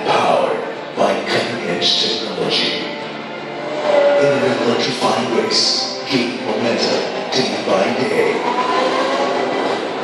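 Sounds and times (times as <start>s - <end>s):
electric race cars whining: 3.0s - 4.8s, 6.6s - 10.0s.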